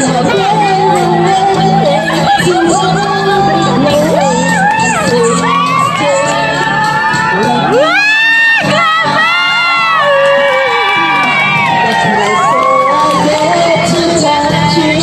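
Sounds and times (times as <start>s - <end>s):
music: 0.0s - 15.0s
women cheering and screaming: 0.3s - 14.0s.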